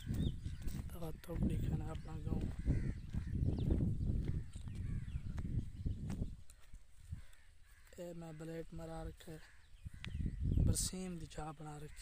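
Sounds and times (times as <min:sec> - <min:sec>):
faint bird calls: 0:00.0 - 0:12.0.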